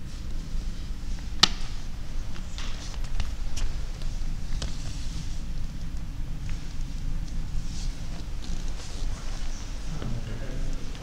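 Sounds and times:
camera handling rumble: 1.2 - 10.1.

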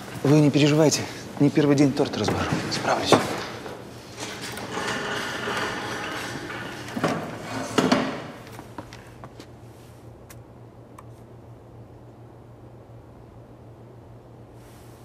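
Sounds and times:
steady low hum: 0.0 - 15.0
metal trolley rattling: 2.0 - 8.4.

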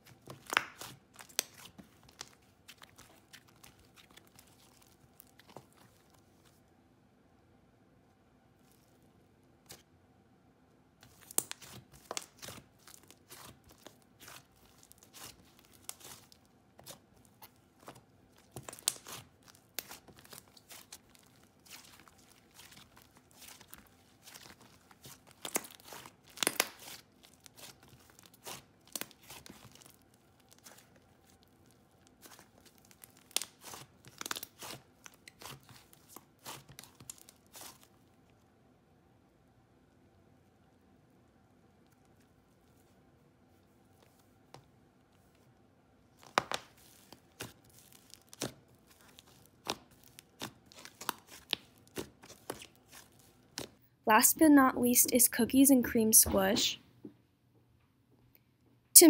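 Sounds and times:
slime squished by hand: 0.0 - 6.6, 11.0 - 38.4, 46.2 - 53.8.

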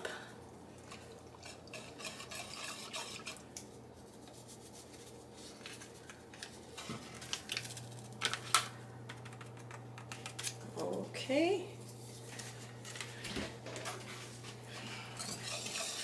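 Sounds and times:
wire whisk scraping a pot: 0.9 - 3.5, 14.9 - 16.0
whisk clinking on metal: 15.2 - 16.0.

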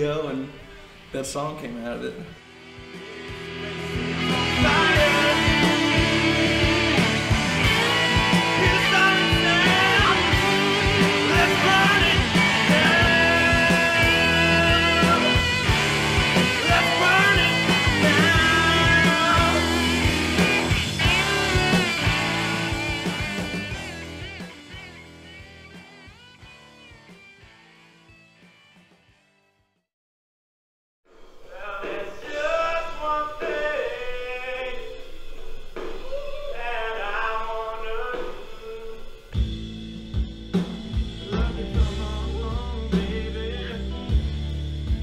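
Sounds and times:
drums: 0.0 - 29.3, 31.1 - 45.0
electric guitar: 2.2 - 29.3, 31.6 - 45.0
bass guitar: 2.3 - 29.1, 32.3 - 45.0
man singing: 3.0 - 22.2, 31.4 - 35.2, 35.8 - 39.4, 41.2 - 44.4.

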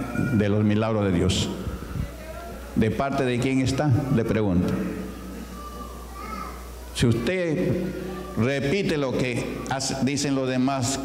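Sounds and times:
faint background voices: 1.1 - 11.0
faint high voice-like sound: 5.2 - 6.9.

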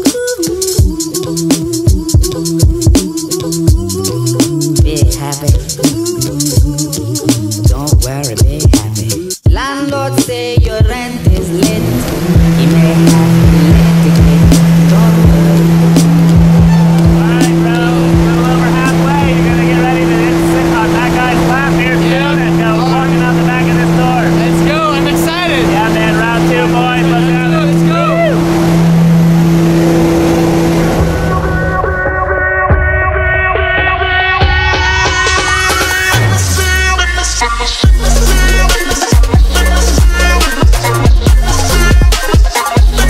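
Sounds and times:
propeller airplane cabin drone: 10.8 - 32.7
voices talking and calling out: 11.3 - 28.7.

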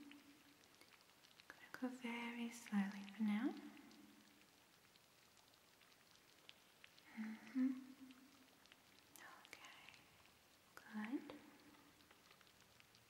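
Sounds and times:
faint ticks: 0.0 - 13.0
soft vocal sound: 7.0 - 8.4
woman humming softly: 7.1 - 8.1.

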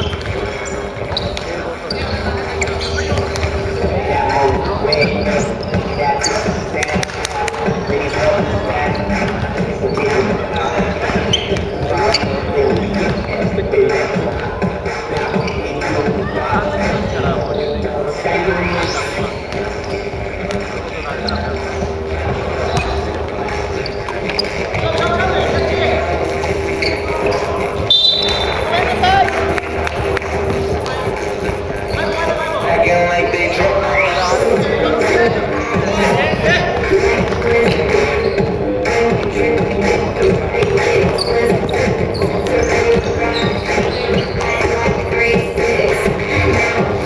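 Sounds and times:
basketball bouncing on court: 0.0 - 16.2, 22.3 - 25.6
players' voices echoing: 0.0 - 47.0.

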